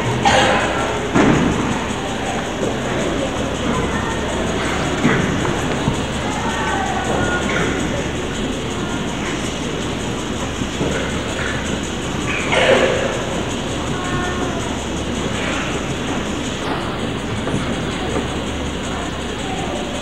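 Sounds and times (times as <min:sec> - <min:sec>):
faint scattered voices: 0:00.0 - 0:20.0
steady rumbling noise: 0:00.0 - 0:20.0.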